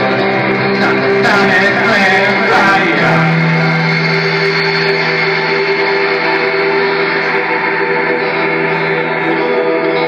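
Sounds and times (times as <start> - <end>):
low held drone note: 0.0 - 9.4
electric guitar with effects: 0.0 - 10.0.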